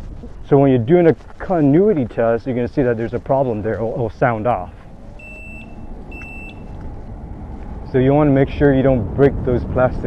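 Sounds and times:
low rumble of wind: 0.0 - 10.0
continuity tester beeping: 5.1 - 6.8.

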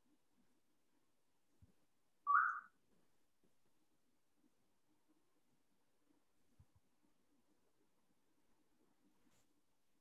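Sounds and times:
whistle-like chirp: 2.3 - 2.7.

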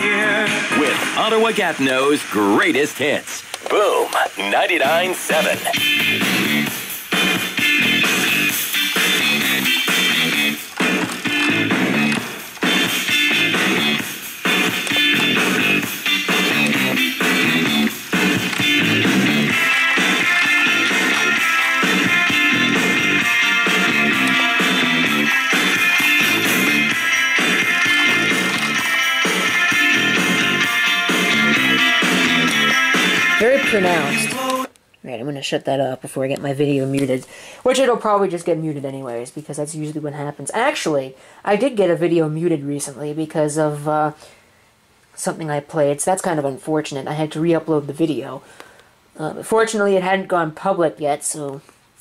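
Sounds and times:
song with guitar on radio: 0.0 - 34.9.

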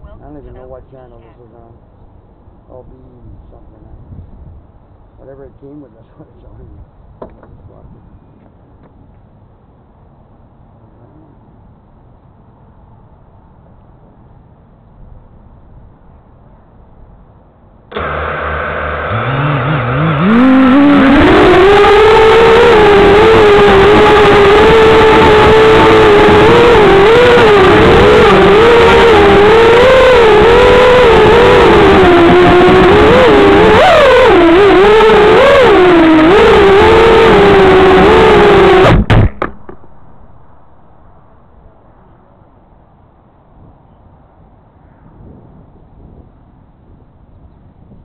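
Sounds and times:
quadcopter motors whining: 17.9 - 39.5
drone knocking on landing: 36.2 - 40.0.

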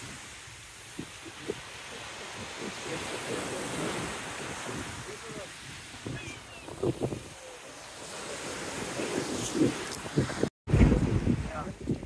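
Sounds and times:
sea surf on shingle: 0.0 - 12.0
wind gusting on microphone: 0.0 - 12.0.

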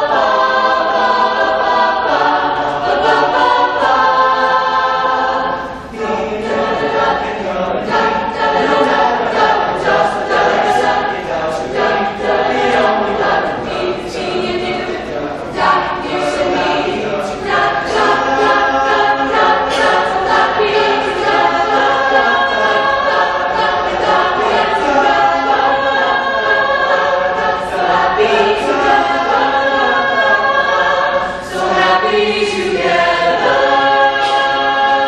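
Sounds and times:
choir singing in harmony: 0.0 - 35.0.

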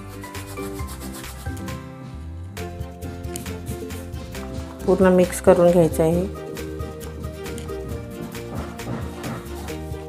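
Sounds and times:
hands rubbing flour: 0.0 - 1.7, 7.2 - 10.0
soft background music: 0.0 - 10.0.

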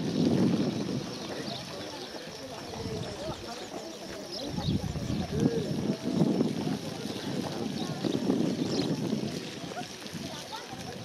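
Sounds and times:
indistinct voices talking: 0.0 - 11.0
wind on microphone: 0.0 - 11.0.

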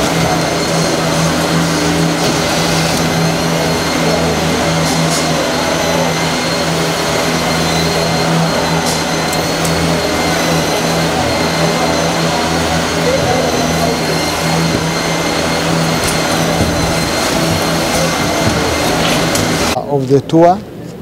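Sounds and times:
faint high whines: 0.0 - 19.8
factory machinery humming: 0.0 - 20.2.

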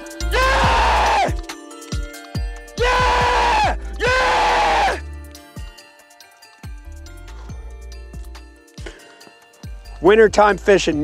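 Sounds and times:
music with kick-drum beat: 0.0 - 11.0
man yelling in celebration: 0.3 - 1.3, 2.8 - 5.0.

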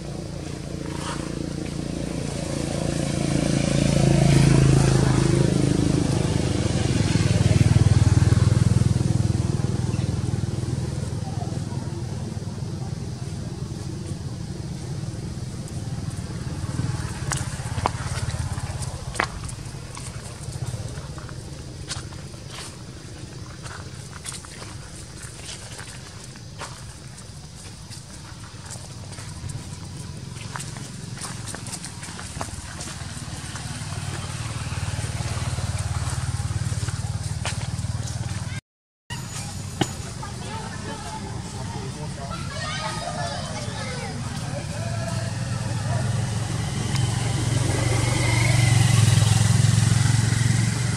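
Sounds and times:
dry leaves crunching underfoot: 16.2 - 38.6.

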